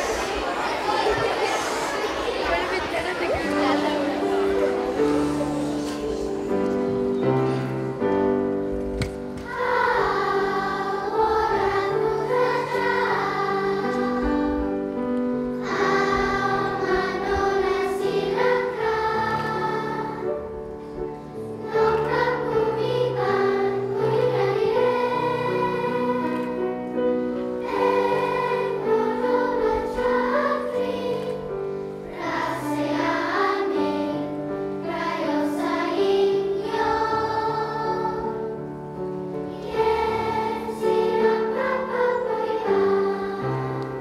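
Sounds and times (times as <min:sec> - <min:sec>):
children's choir singing: 0:00.0 - 0:44.0.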